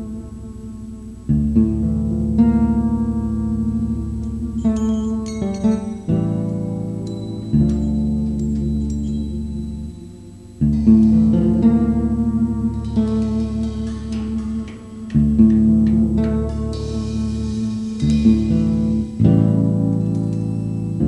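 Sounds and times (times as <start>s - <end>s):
deep bass line: 0.0s - 21.0s
electric guitars playing chords: 0.0s - 21.0s.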